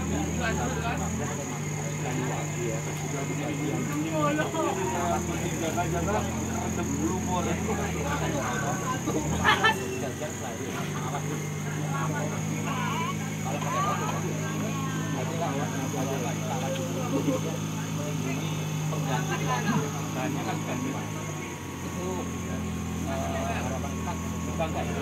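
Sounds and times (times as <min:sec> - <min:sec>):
crowd chatter: 0:00.0 - 0:25.0
vehicle engine idling: 0:00.0 - 0:25.0.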